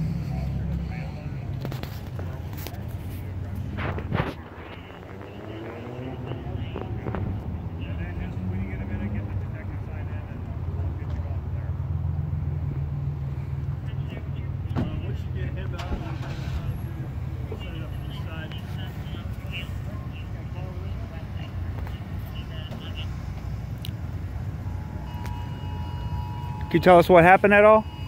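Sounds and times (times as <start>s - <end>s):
faint indistinct voices: 0.0s - 27.7s
vehicle engine running: 0.0s - 28.0s.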